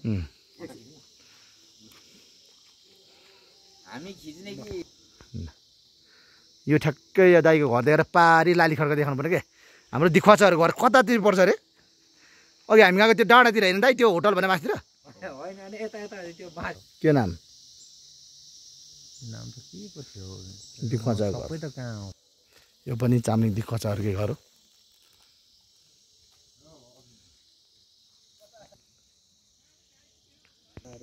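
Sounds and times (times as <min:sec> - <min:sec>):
insects chirring: 0:00.0 - 0:31.0
man talking: 0:22.9 - 0:24.4.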